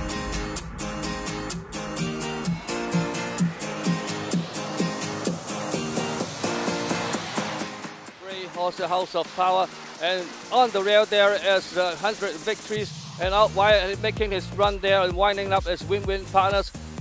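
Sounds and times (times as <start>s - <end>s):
music with percussive beat: 0.0s - 17.0s.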